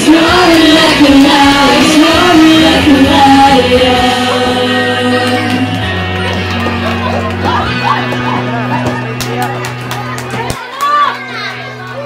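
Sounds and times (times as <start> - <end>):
children chattering: 4.9 - 12.0
child shouting: 10.5 - 12.0.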